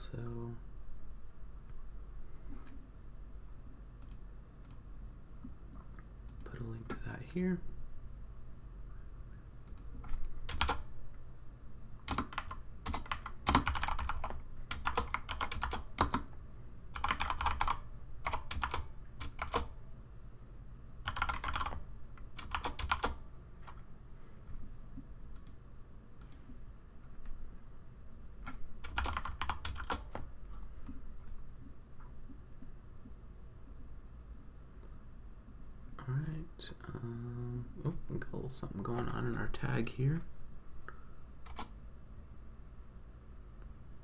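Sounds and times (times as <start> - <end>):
keyboard typing: 9.6 - 10.9, 12.0 - 19.8, 21.0 - 23.8, 28.4 - 30.3, 41.4 - 41.7.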